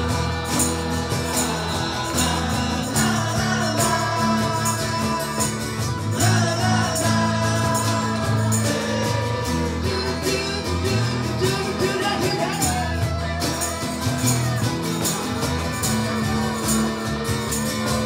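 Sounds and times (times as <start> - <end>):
cajon beat: 0.0 - 18.0
melodic guitar line: 0.0 - 18.0
strummed guitars: 0.0 - 18.0.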